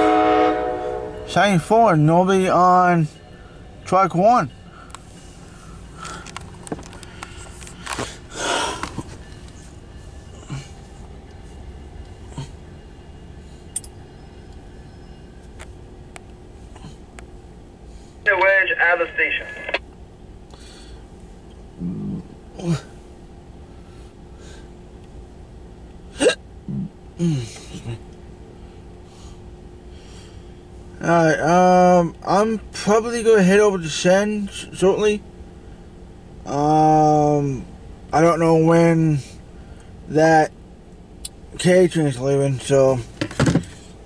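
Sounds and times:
faint steady hum: 0.0 - 44.0
car cabin hum: 18.3 - 20.0
low voiced grunt: 21.8 - 22.9
person hiccuping: 26.1 - 27.4.

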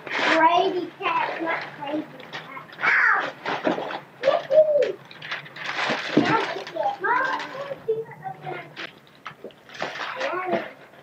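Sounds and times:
wrapping paper rustling: 1.2 - 8.0
coo-like vocal sounds: 4.2 - 5.0.

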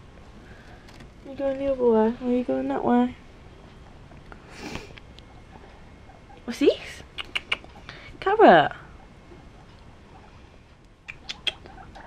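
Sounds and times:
guinea pig squeaking: 5.1 - 10.4, 11.0 - 12.0.

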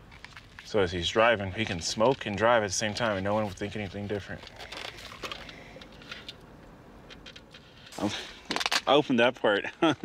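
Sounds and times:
plastic container clicks and rustles: 1.6 - 6.4, 7.1 - 9.0.

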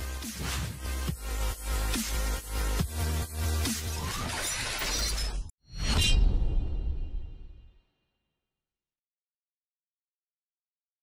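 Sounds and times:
electronic music with heavy beat: 0.0 - 4.9.

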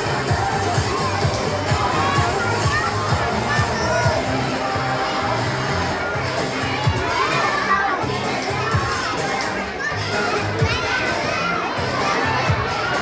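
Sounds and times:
children shouting and cheering: 0.0 - 13.0
pop dance track: 0.0 - 13.0.

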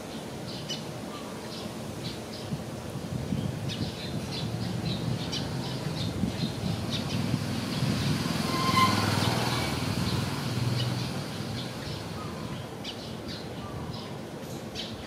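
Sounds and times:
small birds chirping: 3.3 - 8.5, 9.1 - 15.0.

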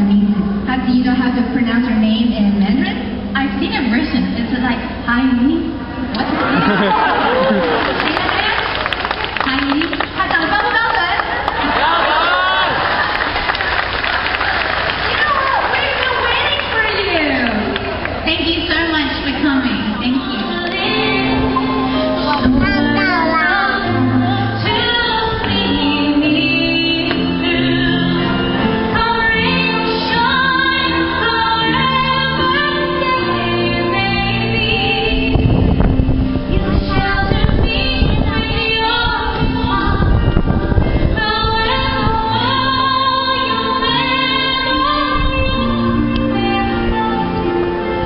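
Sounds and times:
woman singing into microphone: 18.3 - 35.8, 36.5 - 48.0
instrumental accompaniment: 20.0 - 48.0.

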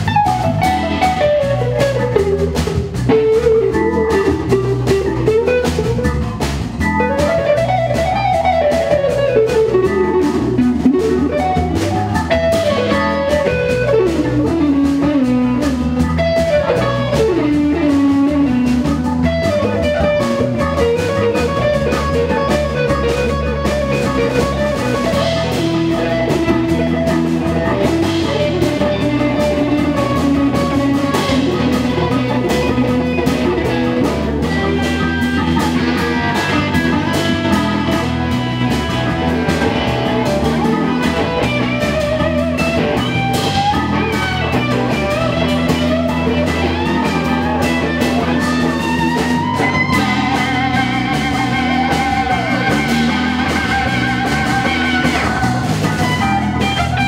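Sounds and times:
drum kit: 0.0 - 57.0
electric guitar lead lines: 0.0 - 57.0
keyboard: 0.0 - 57.0.

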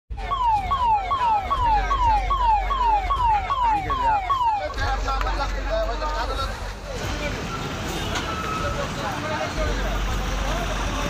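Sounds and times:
electronic siren wailing: 0.1 - 5.0
voices: 0.6 - 11.0.

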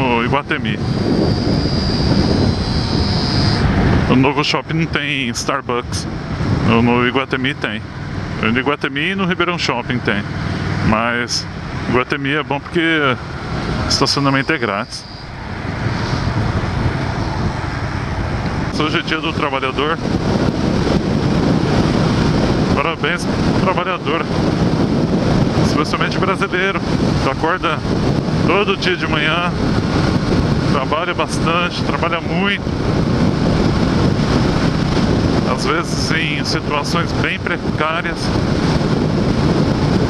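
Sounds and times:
wind and road noise: 0.0 - 40.0
motorcycle engine running: 0.8 - 4.1, 7.8 - 25.7.

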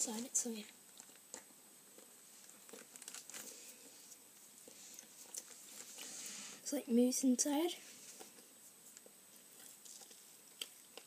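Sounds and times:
chocolate shell crunching: 0.9 - 3.5.

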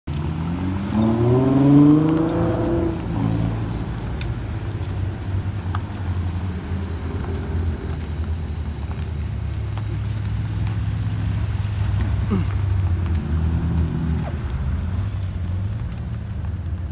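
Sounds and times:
sports car engine revving: 0.1 - 8.1
low engine rumble: 0.1 - 16.9.

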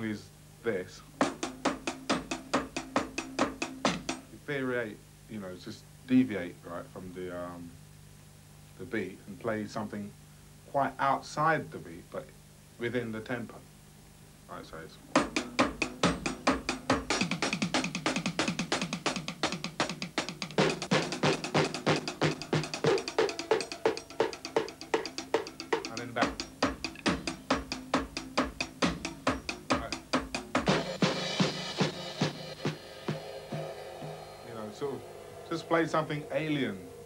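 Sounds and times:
drum kit playing: 1.1 - 4.4, 15.0 - 37.0
cymbal crash: 30.7 - 37.0.

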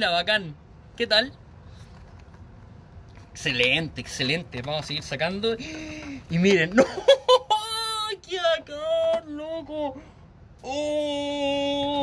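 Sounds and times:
man exclaiming excitedly: 6.6 - 10.0, 10.6 - 12.0.

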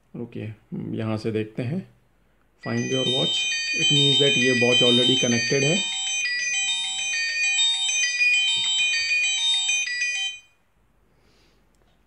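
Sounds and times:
smartwatch ringtone melody: 2.6 - 10.5.

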